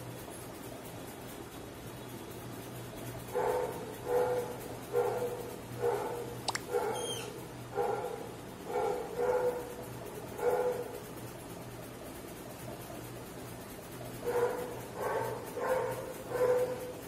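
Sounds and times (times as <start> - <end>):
dog barking: 3.3 - 11.0, 14.2 - 17.0.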